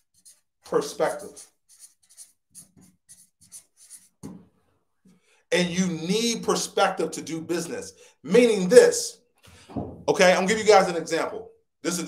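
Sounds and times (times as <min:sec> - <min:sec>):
marker pen writing on whiteboard: 0:00.0 - 0:04.6.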